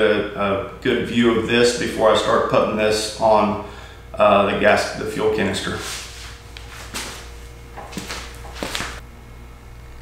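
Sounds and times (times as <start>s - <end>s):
low steady hum: 0.0s - 10.0s
rustles and clicks: 5.9s - 9.0s.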